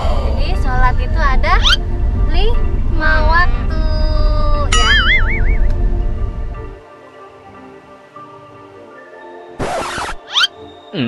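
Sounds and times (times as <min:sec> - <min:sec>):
car road noise rumble: 0:00.0 - 0:06.8
background music: 0:00.0 - 0:11.0
high-pitched gliding tones: 0:00.3 - 0:06.4.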